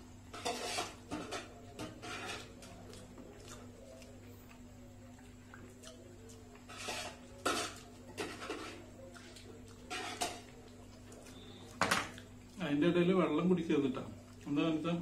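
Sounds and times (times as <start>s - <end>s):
chewing and mouth noises: 2.4s - 12.6s, 14.1s - 14.6s.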